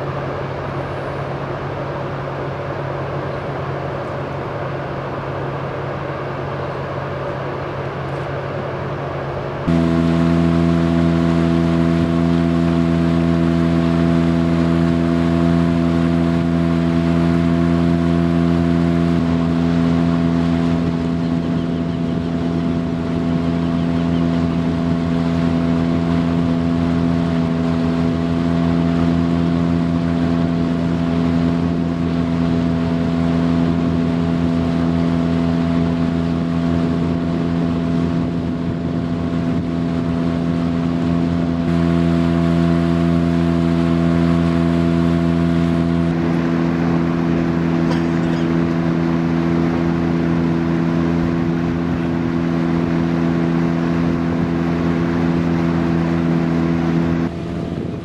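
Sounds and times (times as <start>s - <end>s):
outboard motor running: 0.0s - 58.0s.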